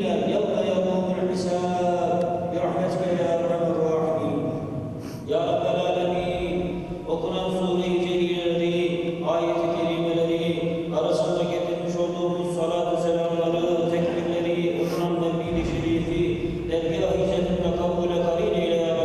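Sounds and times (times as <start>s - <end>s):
man chanting into a microphone: 0.0s - 19.0s.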